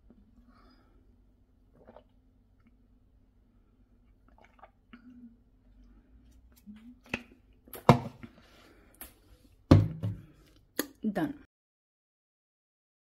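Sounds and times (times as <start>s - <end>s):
person chewing close to microphone: 4.0s - 4.8s.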